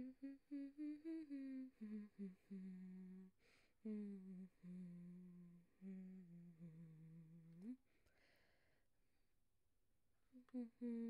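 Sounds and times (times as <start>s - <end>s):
woman humming: 0.0s - 7.8s, 10.4s - 11.0s.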